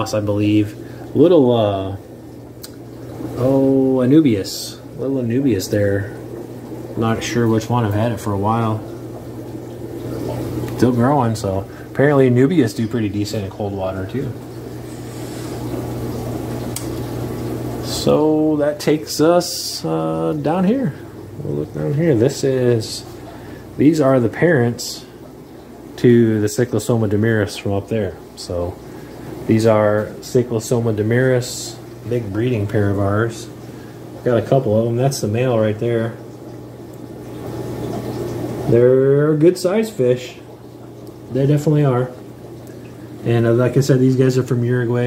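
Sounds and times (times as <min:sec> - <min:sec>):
bubbling trickling water: 0:00.0 - 0:45.0
low electric hum: 0:00.0 - 0:45.0.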